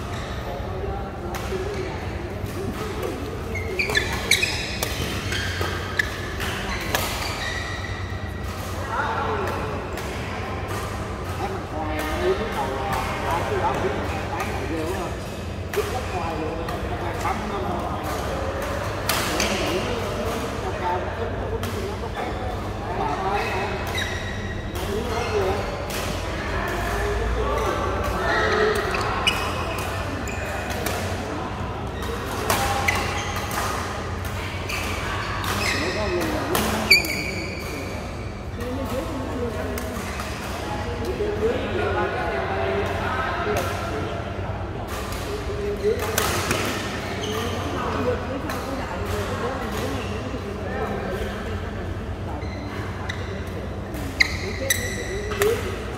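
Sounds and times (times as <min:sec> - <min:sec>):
players' voices: 0:00.0 - 0:55.9.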